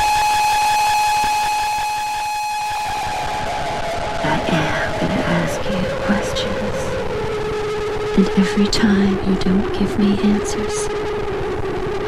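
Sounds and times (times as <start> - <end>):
sustained electronic tone: 0.0 - 12.0.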